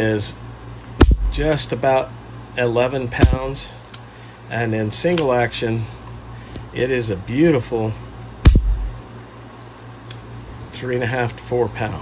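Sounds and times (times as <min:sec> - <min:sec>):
low thud: 0:01.0 - 0:01.4, 0:08.5 - 0:09.0.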